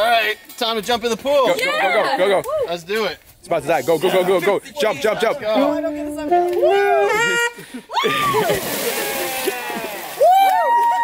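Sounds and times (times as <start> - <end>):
people shouting and whooping: 6.6 - 11.0
water splashing in pool: 8.0 - 11.0.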